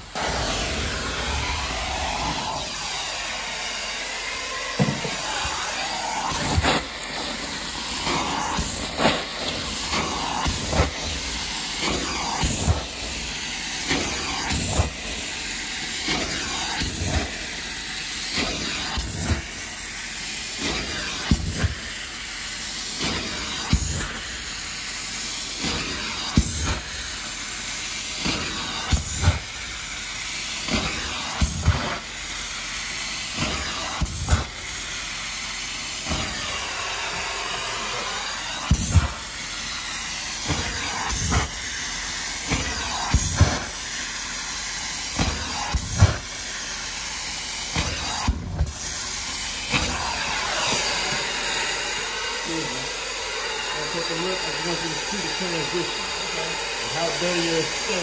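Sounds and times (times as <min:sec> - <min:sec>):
carpet extractor tool hissing: 0:00.0 - 0:58.0.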